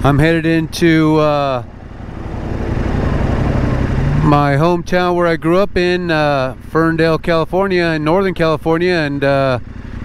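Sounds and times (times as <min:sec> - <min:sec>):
car approaching on road: 0:00.0 - 0:10.0
motorcycle engine idling: 0:00.0 - 0:10.0.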